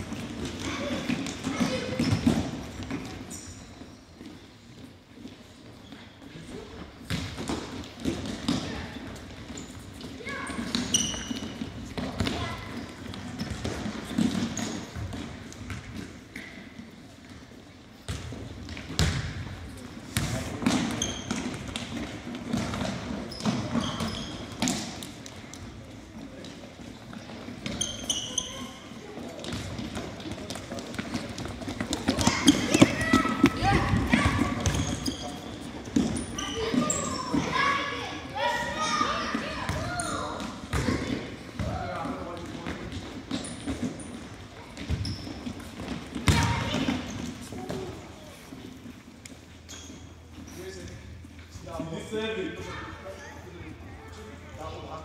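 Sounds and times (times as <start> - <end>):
sneakers squeaking on floor: 0.0 - 53.4
ball kicked and bouncing on floor: 18.1 - 19.6
children's voices and shouts: 32.2 - 34.6.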